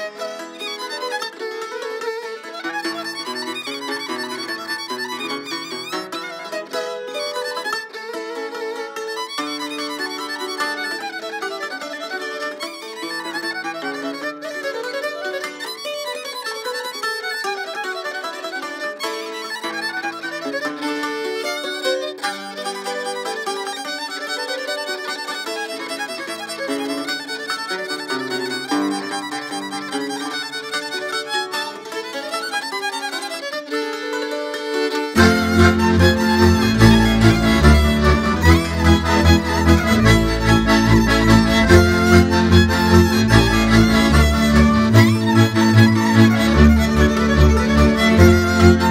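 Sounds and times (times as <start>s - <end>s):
fiddle playing dance tune: 0.0s - 48.9s.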